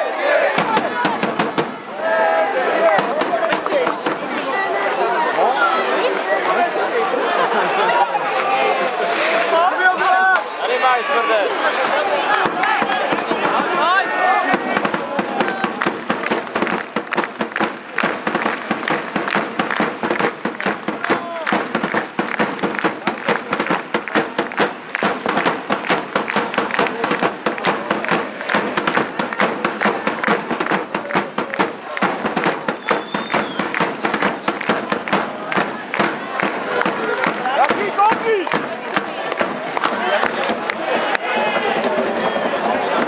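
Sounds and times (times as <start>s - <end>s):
crowd chanting and cheering: 0.0s - 43.0s
fast drum or clap beat: 0.5s - 1.8s, 2.8s - 4.3s, 12.3s - 43.0s.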